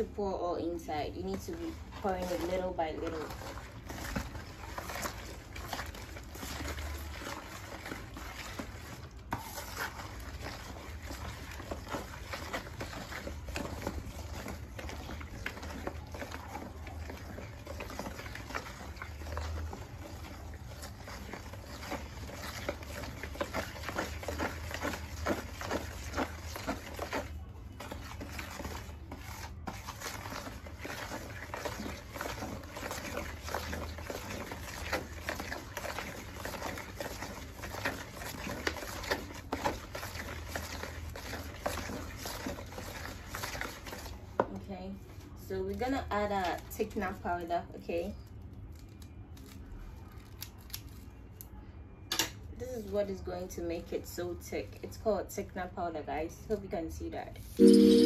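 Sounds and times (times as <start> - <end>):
stick swishing liquid soap: 0.0 - 46.9.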